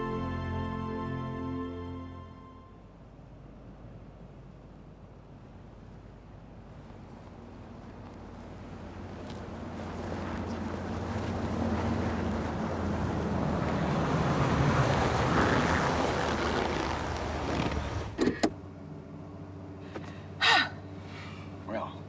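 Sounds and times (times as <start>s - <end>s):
vehicle engine and tyres: 0.0s - 22.0s.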